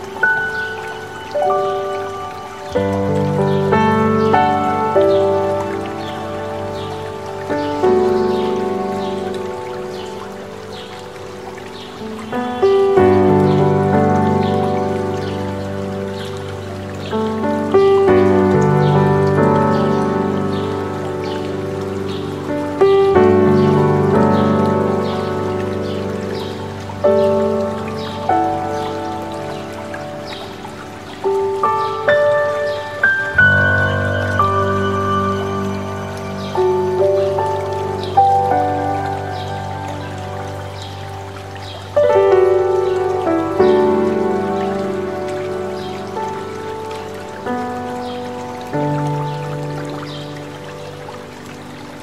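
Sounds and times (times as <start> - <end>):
birds chirping: 0.0 - 52.0
mountain stream rushing: 0.0 - 52.0
slow solo piano: 0.0 - 52.0.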